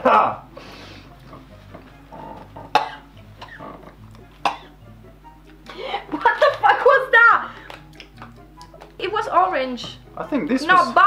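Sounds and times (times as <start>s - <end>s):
person coughing sharply: 2.7s - 3.6s, 4.4s - 4.7s.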